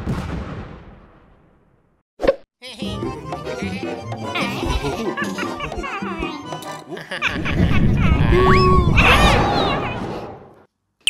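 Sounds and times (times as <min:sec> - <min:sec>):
cheerful music: 0:02.7 - 0:08.5
dense cartoon sound effect: 0:07.2 - 0:10.5.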